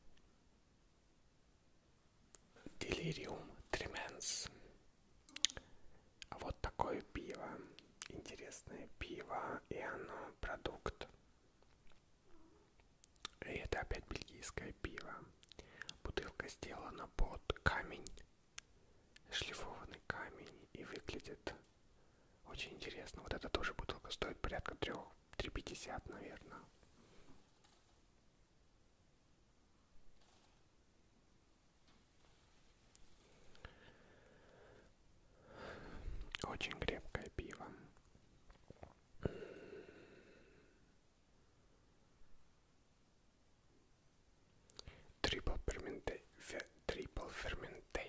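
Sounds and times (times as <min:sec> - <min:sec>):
man whispering: 0:02.4 - 0:11.2, 0:12.3 - 0:21.8, 0:22.4 - 0:27.3, 0:35.8 - 0:38.0, 0:44.7 - 0:48.0.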